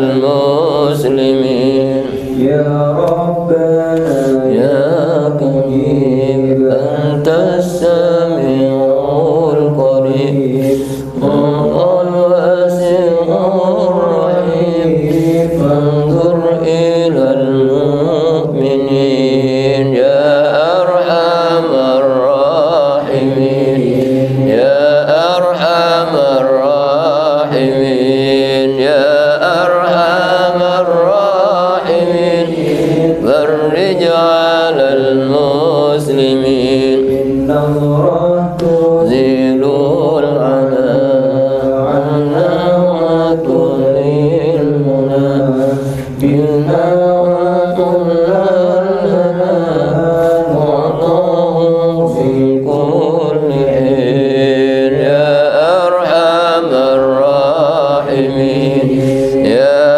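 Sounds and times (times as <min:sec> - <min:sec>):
devotional chanting voice: 0:00.0 - 0:59.9.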